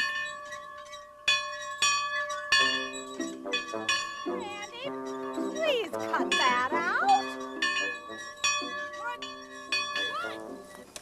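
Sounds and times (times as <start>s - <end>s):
bell-like chime notes: 0.0s - 10.8s.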